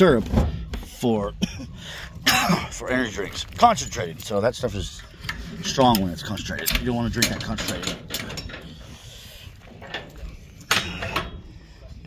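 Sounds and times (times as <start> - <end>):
metal hook clinking on steel cage: 5.0 - 8.9, 9.8 - 11.5.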